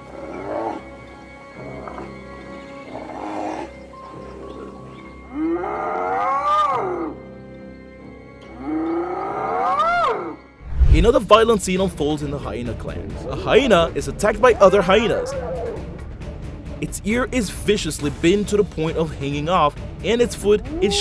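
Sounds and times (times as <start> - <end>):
hyena crying out: 5.2 - 7.2, 8.6 - 10.4, 14.5 - 15.8, 20.6 - 21.0.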